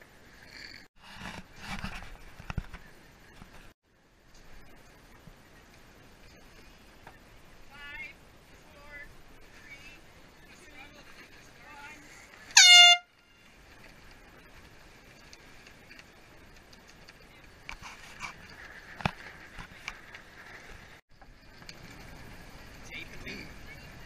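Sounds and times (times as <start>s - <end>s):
low wind: 0.0s - 24.0s
air horn blast: 12.6s - 13.2s.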